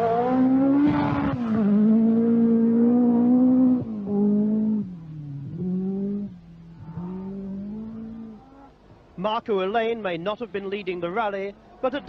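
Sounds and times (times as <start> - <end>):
rally car engine revving: 0.0 - 8.8.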